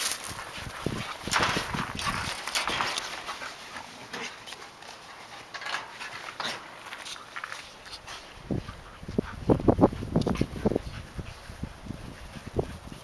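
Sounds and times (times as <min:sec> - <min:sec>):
dogs scuffling: 0:00.0 - 0:13.0
huskies making excited noises: 0:00.0 - 0:13.0.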